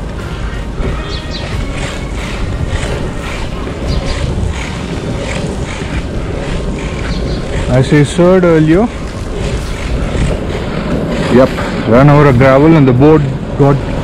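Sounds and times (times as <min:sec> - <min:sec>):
skateboard wheels rolling on asphalt: 0:00.0 - 0:14.0
wind noise on microphone: 0:00.0 - 0:14.0.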